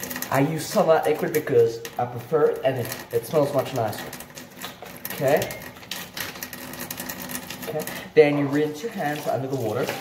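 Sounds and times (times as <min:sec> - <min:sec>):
soapy hands rubbing together: 0:07.5 - 0:10.0.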